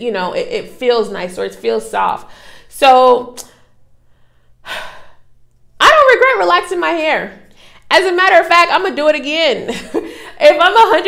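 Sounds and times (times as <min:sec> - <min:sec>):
woman speaking: 0:00.0 - 0:03.4, 0:05.8 - 0:11.0
woman breathing in: 0:02.3 - 0:02.7, 0:03.6 - 0:05.4.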